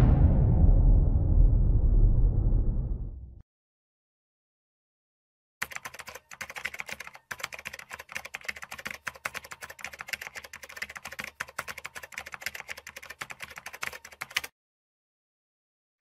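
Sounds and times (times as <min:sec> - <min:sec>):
computer keyboard typing: 0:05.6 - 0:14.5.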